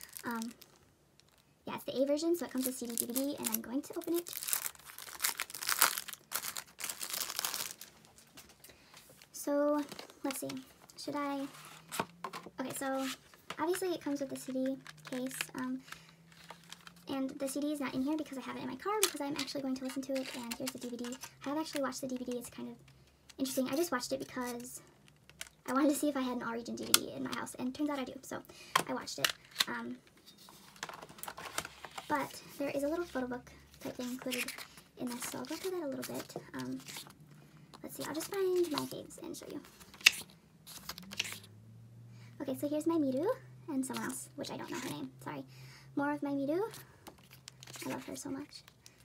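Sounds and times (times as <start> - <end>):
plastic shrink wrap crinkling: 0.0 - 1.5, 2.4 - 10.6, 12.8 - 17.1, 18.8 - 22.6, 30.5 - 41.5, 47.1 - 49.0.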